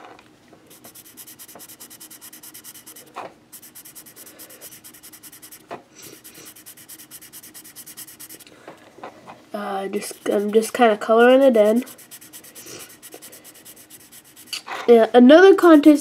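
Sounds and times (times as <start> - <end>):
colouring tool scratching on paper: 0.7 - 8.5, 9.6 - 14.6.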